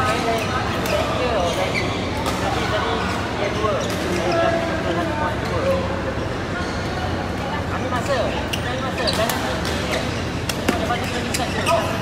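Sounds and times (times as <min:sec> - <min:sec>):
shoes squeaking on court floor: 0:00.0 - 0:04.6, 0:08.0 - 0:12.0.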